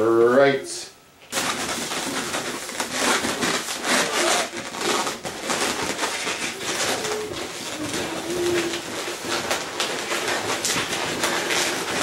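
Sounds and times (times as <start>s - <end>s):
balloons squeaking and rubbing: 1.3s - 12.0s.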